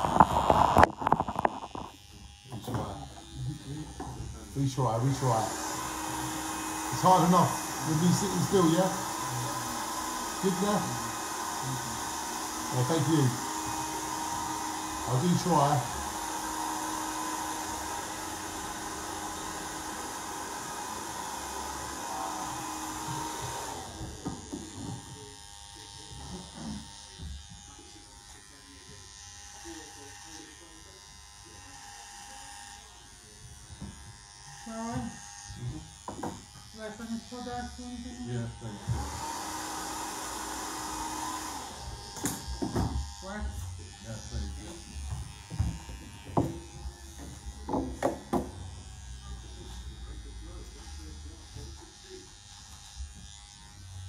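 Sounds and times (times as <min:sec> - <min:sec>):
electric beard trimmer buzzing: 0:00.0 - 0:54.0.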